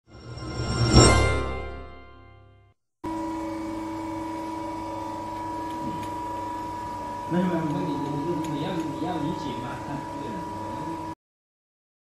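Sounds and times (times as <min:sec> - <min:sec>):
electrical hum with high whine: 0:03.1 - 0:11.2.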